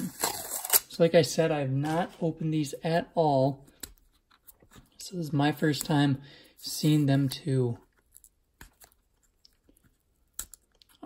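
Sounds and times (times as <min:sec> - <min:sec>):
tape peeling crackles: 0:00.0 - 0:01.0.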